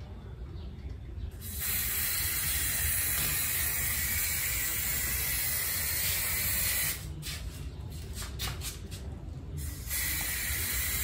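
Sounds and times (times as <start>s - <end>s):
aerosol spray can hissing: 1.4s - 7.0s, 9.7s - 11.0s.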